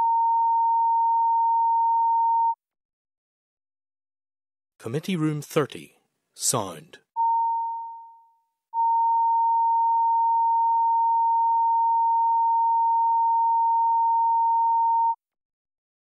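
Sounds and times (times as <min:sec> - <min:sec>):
steady electronic test tone: 0:07.2 - 0:08.2, 0:08.8 - 0:15.2.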